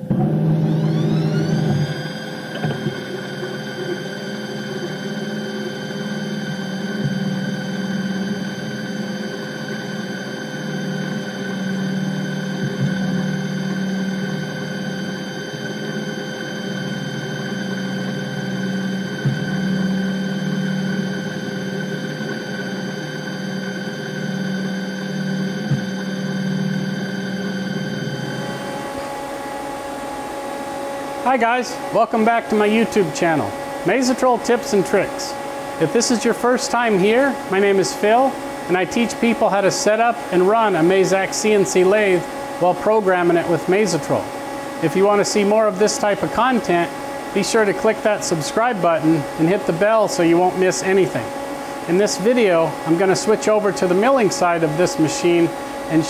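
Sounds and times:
milling tool whine: 0:00.0 - 0:56.0.

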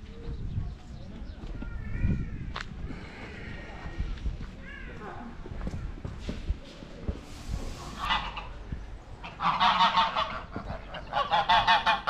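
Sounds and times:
poultry calling loudly: 0:07.9 - 0:12.0.

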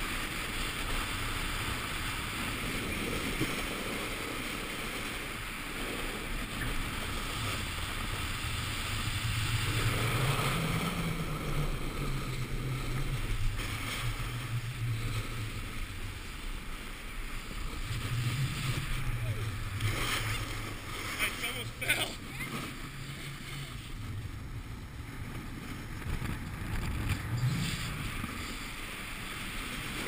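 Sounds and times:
wind buffeting microphone: 0:00.7 - 0:30.0
snowboard sliding on packed snow: 0:25.2 - 0:30.0.

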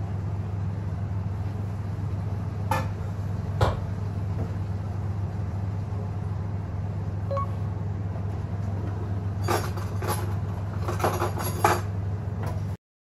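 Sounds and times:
low mechanical hum: 0:00.0 - 0:12.8.

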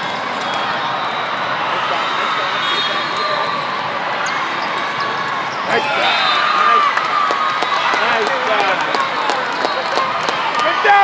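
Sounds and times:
crowd voices: 0:00.0 - 0:11.0
crowd shouting: 0:05.4 - 0:11.0.

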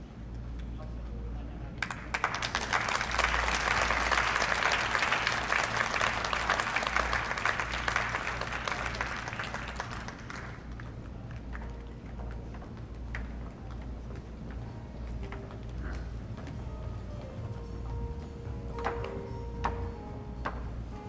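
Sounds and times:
crowd applauding: 0:01.8 - 0:13.8.

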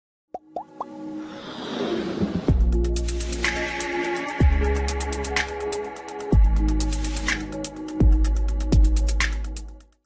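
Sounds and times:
whoosh: 0:01.2 - 0:02.9.

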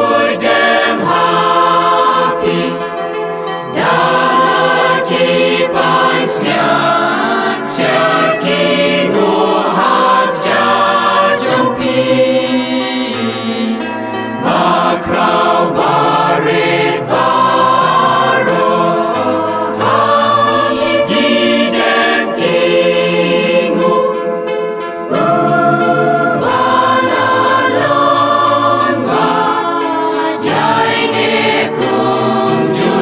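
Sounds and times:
choir singing chant: 0:00.0 - 0:03.0, 0:03.6 - 0:33.0.

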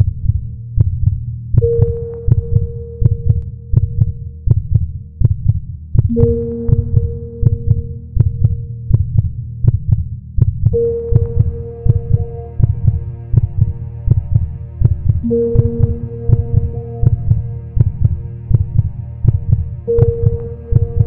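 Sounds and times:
low heartbeat-like pulse: 0:00.0 - 0:21.0
held tone: 0:06.1 - 0:08.1.

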